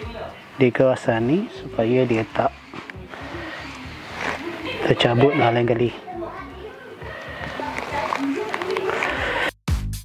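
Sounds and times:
indistinct background voices: 0.0s - 9.5s
room noise: 0.0s - 9.5s.

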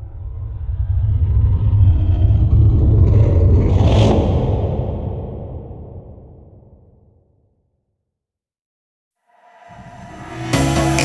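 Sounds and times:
deep rumbling intro effect: 0.0s - 7.6s.

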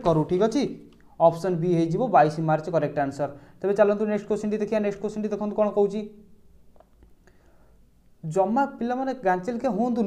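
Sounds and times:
man speaking: 0.0s - 6.3s, 8.2s - 10.0s
faint breath noise: 3.3s - 3.6s, 7.2s - 8.0s.

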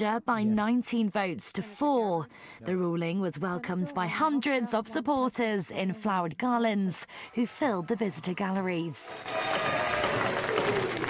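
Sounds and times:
crowd applauding and cheering: 9.1s - 11.0s.

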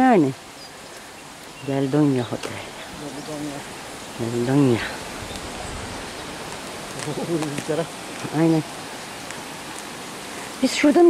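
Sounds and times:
steady outdoor rushing noise: 0.0s - 11.0s.

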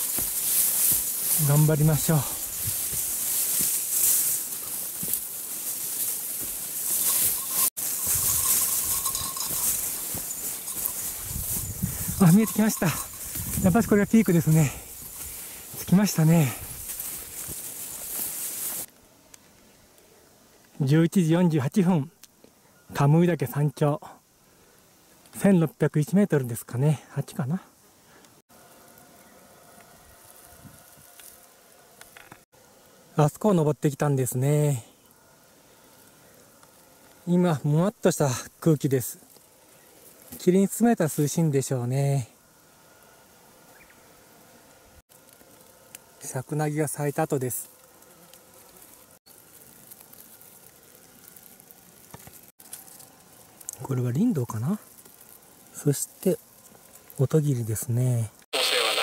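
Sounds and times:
rustling through scrub: 0.0s - 19.6s, 28.1s - 32.6s, 35.0s - 41.8s, 42.4s - 58.5s
steady high hiss: 0.0s - 59.0s.

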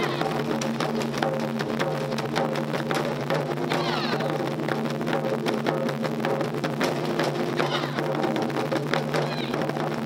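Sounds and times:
taiko drumming: 0.0s - 10.0s.

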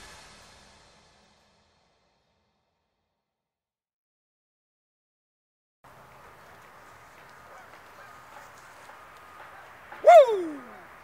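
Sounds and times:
faint outdoor background: 5.8s - 11.0s
loud call falling in pitch: 10.0s - 10.8s.

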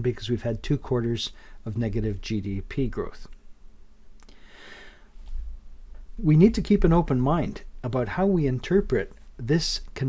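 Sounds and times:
low electrical hum: 0.0s - 10.0s
man breathing in: 4.3s - 5.3s.

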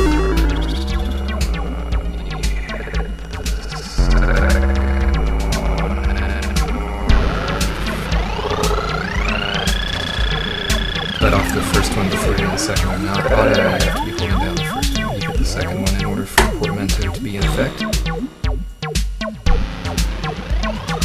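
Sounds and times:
synth note sliding upward: 0.0s - 18.5s
low bass pulse: 0.0s - 21.0s
sharp percussion ticks: 0.0s - 21.0s.

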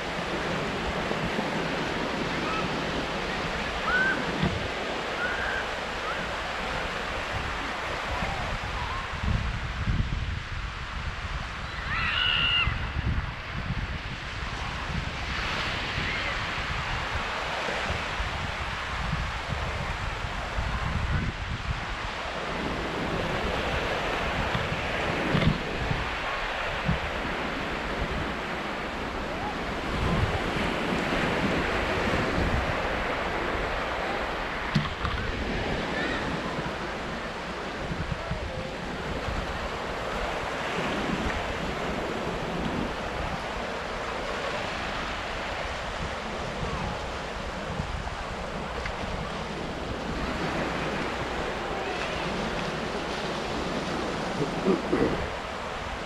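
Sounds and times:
small waves on sandy shore: 0.0s - 56.0s
wind buffeting microphone: 0.0s - 56.0s.

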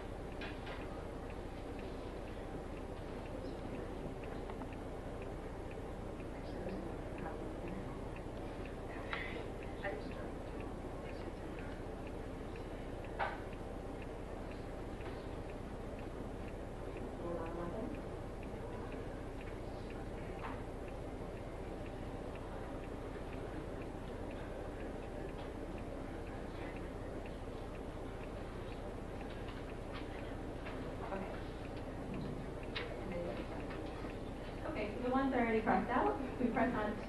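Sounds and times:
faint regular ticking: 0.0s - 37.0s
low room hum: 0.0s - 37.0s.

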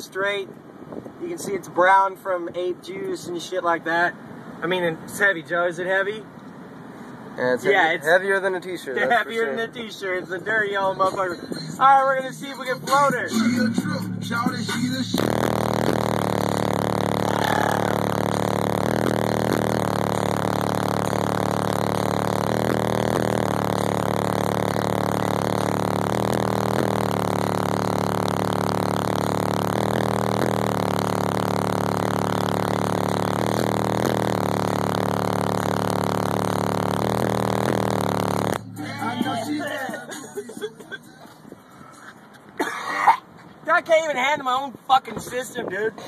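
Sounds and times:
distorted bass-heavy music: 9.0s - 42.8s.

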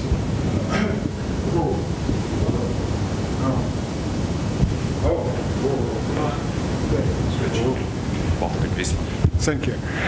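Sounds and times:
low rumbling room noise: 0.0s - 10.0s.

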